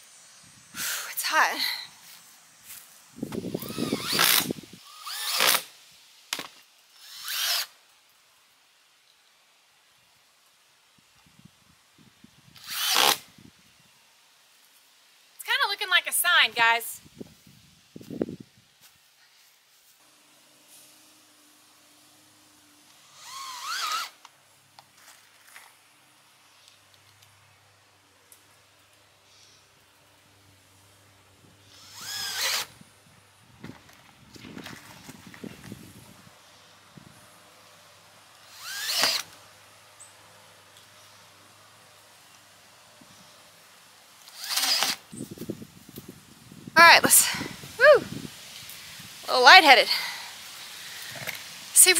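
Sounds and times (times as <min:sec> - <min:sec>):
cordless drill driving screws: 0:03.5 - 0:05.7, 0:06.4 - 0:07.7, 0:12.6 - 0:13.2, 0:22.9 - 0:24.2, 0:31.7 - 0:32.8, 0:38.4 - 0:39.4, 0:44.2 - 0:45.0.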